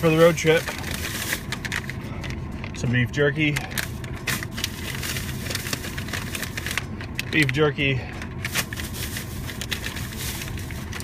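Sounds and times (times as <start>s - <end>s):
plastic bags crinkling: 0.0s - 2.0s, 3.6s - 7.6s, 8.4s - 11.0s
low steady rumble: 0.0s - 11.0s.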